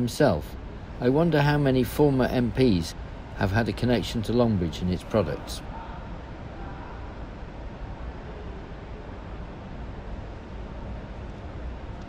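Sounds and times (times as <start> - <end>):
busy exhibition hall rumble and hiss: 0.0 - 12.0.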